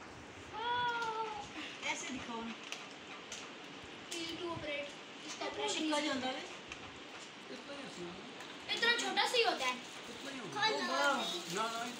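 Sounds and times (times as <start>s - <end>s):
child's high-pitched excited exclamation: 0.5s - 1.5s.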